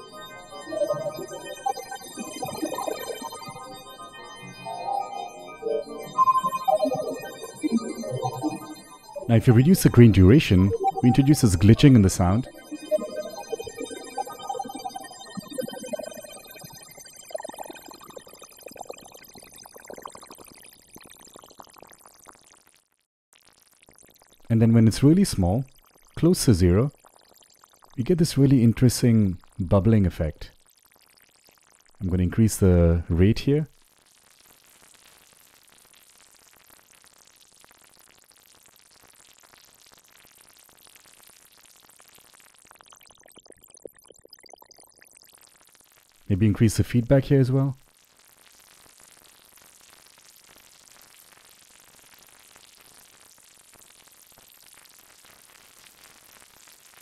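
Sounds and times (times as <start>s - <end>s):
glitching granular synth tones: 0.0s - 18.2s
granular synth crackle: 0.0s - 32.1s, 33.7s - 57.0s.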